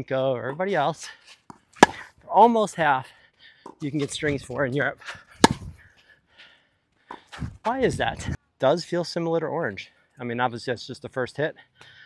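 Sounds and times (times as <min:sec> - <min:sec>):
tennis ball struck by racket: 0:01.5 - 0:02.2, 0:05.4 - 0:05.8.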